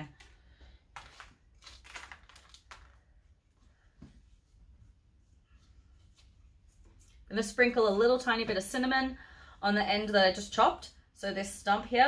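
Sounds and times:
potting mix rustling: 0:00.0 - 0:03.2.

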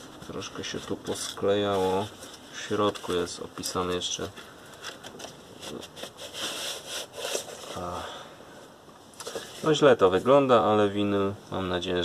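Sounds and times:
cardboard sleeve rustling: 0:00.0 - 0:08.0.

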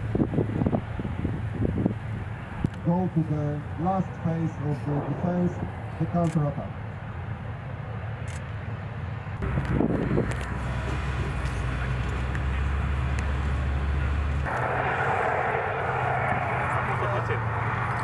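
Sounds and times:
military vehicle engines: 0:00.0 - 0:18.0.

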